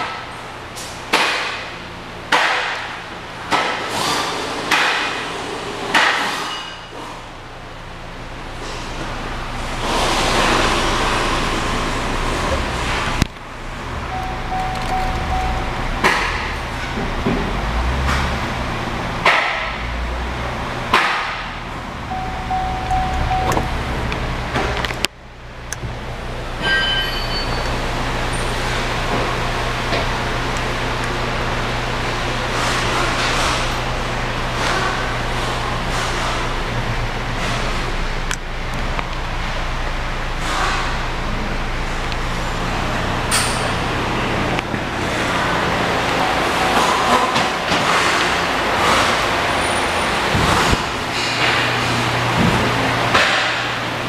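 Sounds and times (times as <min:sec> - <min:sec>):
car engine idling: 0:06.9 - 0:26.7, 0:27.3 - 0:54.0
short steady tone: 0:14.1 - 0:16.1, 0:22.1 - 0:24.0
high-pitched chime: 0:22.1 - 0:23.8, 0:26.6 - 0:27.7.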